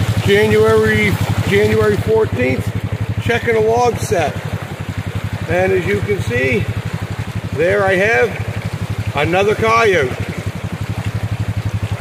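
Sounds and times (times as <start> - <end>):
creek rushing over rocks: 0.0 - 12.0
engine idling with low putter: 0.0 - 12.0.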